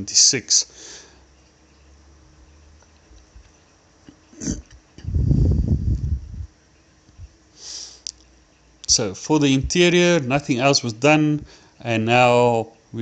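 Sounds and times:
person breathing: 0:00.7 - 0:01.3, 0:07.6 - 0:08.0, 0:11.4 - 0:11.8
rough nasal or throat noise: 0:04.3 - 0:05.8.

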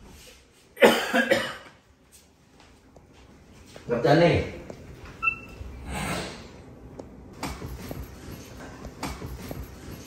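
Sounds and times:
person coughing: 0:00.8 - 0:01.7.

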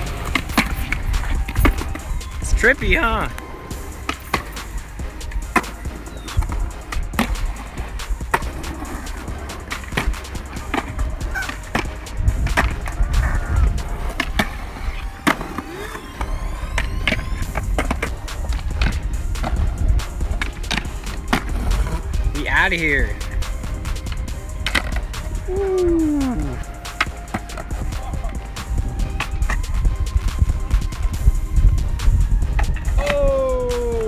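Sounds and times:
skateboard clacks: 0:00.0 - 0:22.2, 0:23.0 - 0:25.5, 0:26.3 - 0:31.0
skateboard wheels rolling on concrete: 0:00.0 - 0:34.0
wind rumble on microphone: 0:12.1 - 0:14.8, 0:27.8 - 0:34.0.

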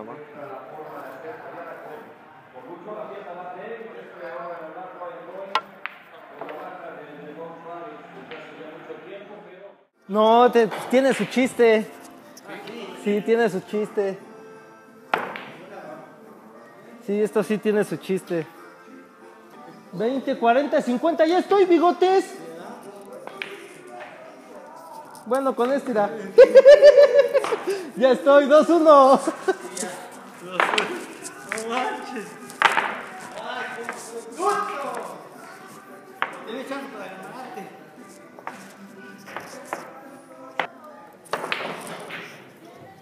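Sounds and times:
faint background voices: 0:00.0 - 0:43.0
people chattering: 0:00.0 - 0:43.0
pool balls clicking: 0:29.7 - 0:34.0.

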